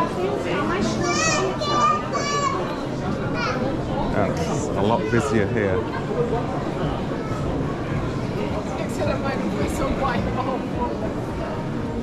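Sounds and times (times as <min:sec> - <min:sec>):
chatter of passers-by: 0:00.0 - 0:12.0.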